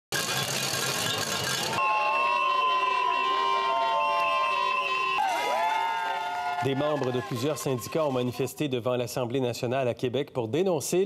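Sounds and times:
crowd of demonstrators: 0.9 - 8.6
whistle blasts: 1.8 - 6.0.

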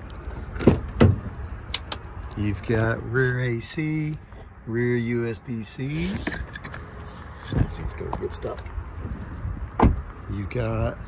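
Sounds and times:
car door handle thumps: 9.8 - 10.0.

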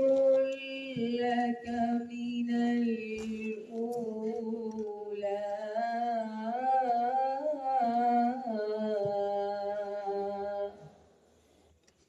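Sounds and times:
person chanting melodic recitation: 0.0 - 10.9.

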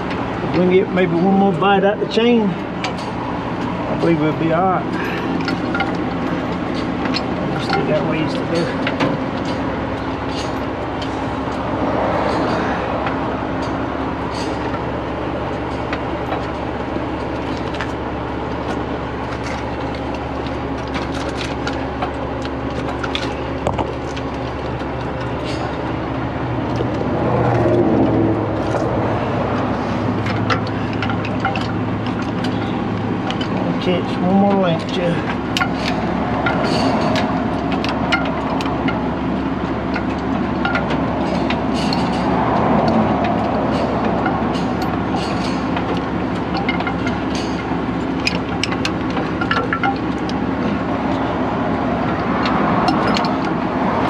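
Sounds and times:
truck engine idling: 0.0 - 54.0
heavy chain clinking: 4.6 - 14.9.

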